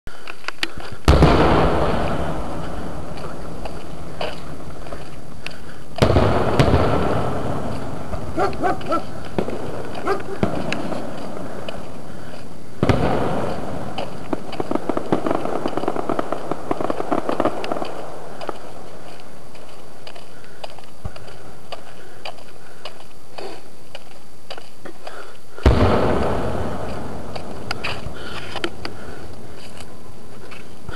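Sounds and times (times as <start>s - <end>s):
fireworks popping: 0.4s - 20.3s, 25.6s - 30.9s.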